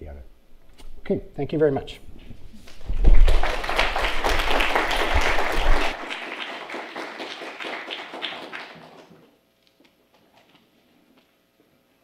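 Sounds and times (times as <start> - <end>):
audience applauding: 2.7 - 9.3.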